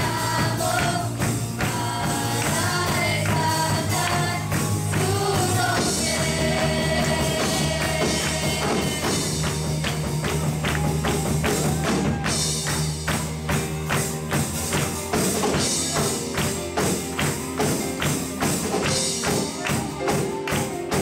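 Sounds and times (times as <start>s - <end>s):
held bass notes: 0.0s - 21.0s
worship band music: 0.0s - 21.0s.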